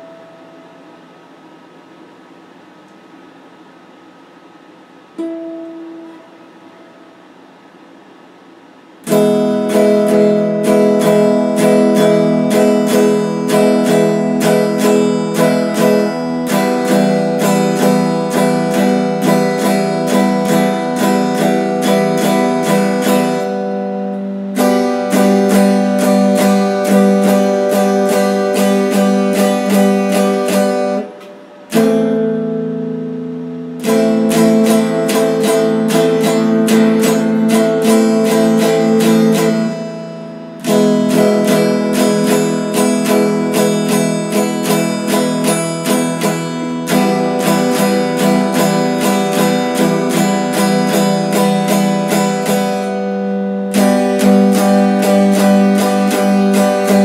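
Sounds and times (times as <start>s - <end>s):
electric guitar strumming chords: 0.0s - 3.1s, 5.1s - 7.8s, 8.5s - 57.0s.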